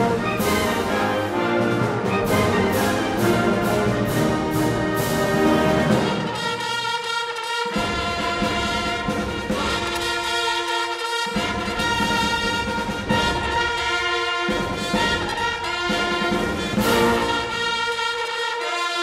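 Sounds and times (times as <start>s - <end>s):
military brass band playing chords: 0.0s - 19.0s.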